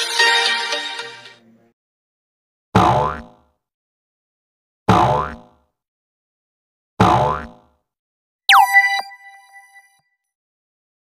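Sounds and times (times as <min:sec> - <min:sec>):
springy cartoon sound effect: 0:08.5 - 0:09.4.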